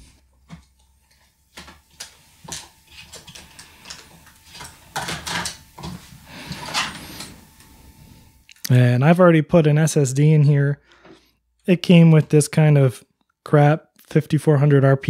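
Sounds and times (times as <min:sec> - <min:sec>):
clicks and scraping of metal and plastic: 0:00.5 - 0:07.3.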